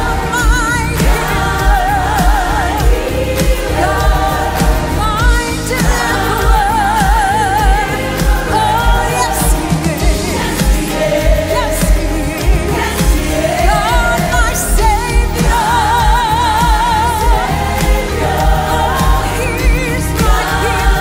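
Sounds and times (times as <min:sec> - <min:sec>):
backing vocalists singing: 0:00.0 - 0:21.0
band with steady beat: 0:00.0 - 0:21.0
lead singer: 0:00.0 - 0:21.0.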